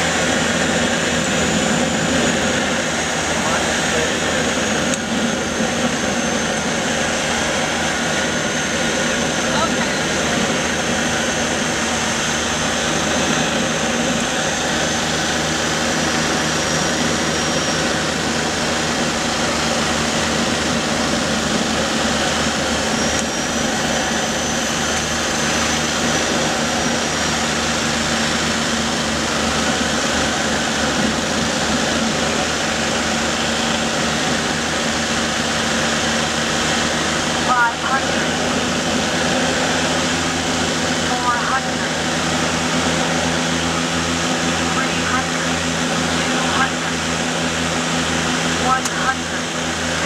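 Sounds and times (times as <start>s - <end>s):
airplane engine and propeller drone: 0.0s - 50.0s
faint high whine: 0.0s - 50.0s.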